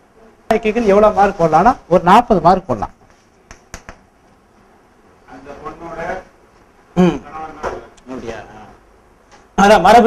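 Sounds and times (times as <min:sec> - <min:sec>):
chalk tapping on blackboard: 0:03.1 - 0:04.0.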